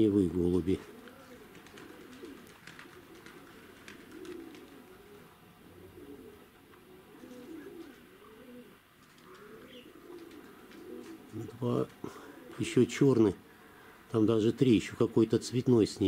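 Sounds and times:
pigeons cooing: 0.0s - 14.1s
faint clicks: 9.0s - 12.1s.

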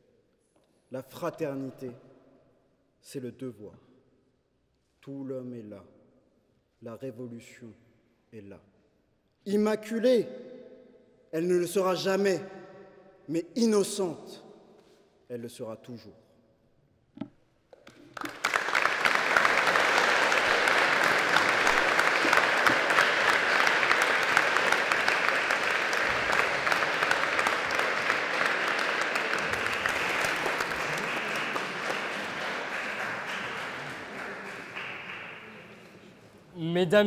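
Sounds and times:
audience applauding: 17.8s - 36.4s.

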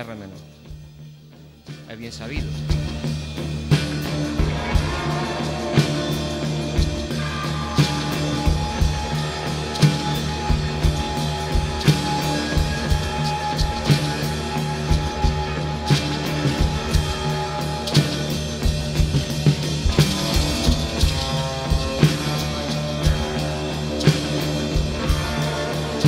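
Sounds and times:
drum and cymbal hits: 0.0s - 26.0s
rock band playing: 0.0s - 26.0s.

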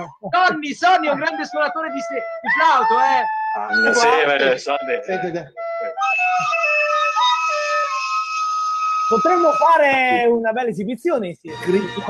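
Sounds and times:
recorder notes: 1.2s - 10.2s, 11.5s - 12.0s.

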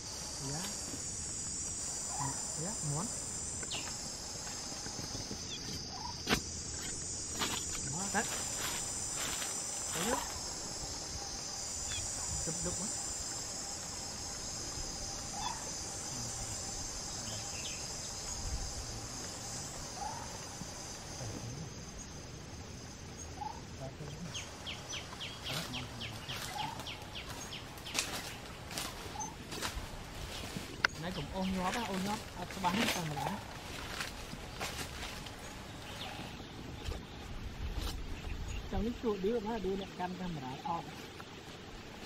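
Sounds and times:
insects chirring: 0.0s - 42.0s.

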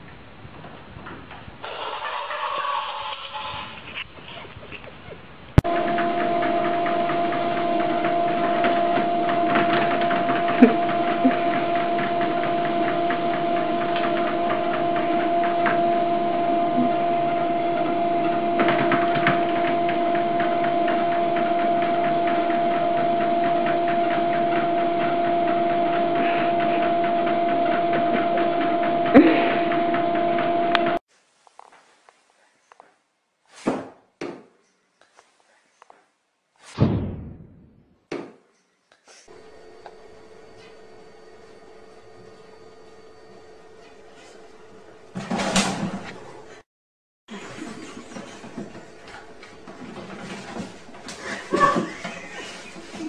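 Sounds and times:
treadmill belt hum: 5.6s - 31.0s, 47.3s - 53.0s
treadmill motor whine: 5.6s - 31.0s, 39.3s - 46.6s, 47.3s - 53.0s.

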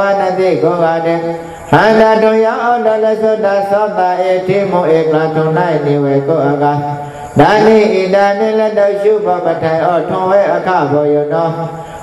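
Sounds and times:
monk chanting: 0.0s - 12.0s.

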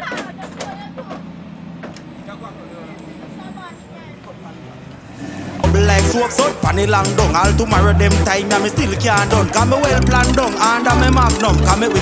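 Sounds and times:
faint voices talking: 2.1s - 5.1s.

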